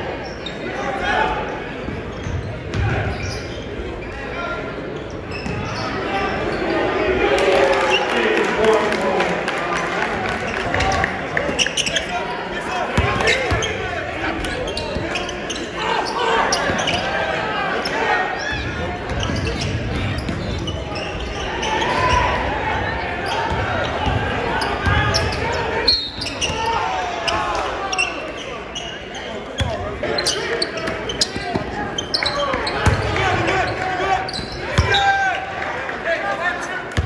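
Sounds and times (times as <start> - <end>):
shouting and chatter: 0.0 - 37.0.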